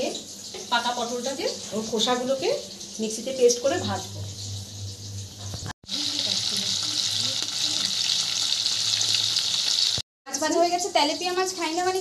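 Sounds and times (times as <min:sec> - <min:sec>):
fish frying in hot oil: 0:00.0 - 0:12.0.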